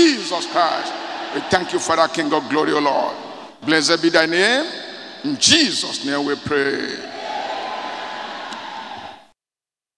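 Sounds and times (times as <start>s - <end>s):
congregation saying amen: 0.0s - 7.2s.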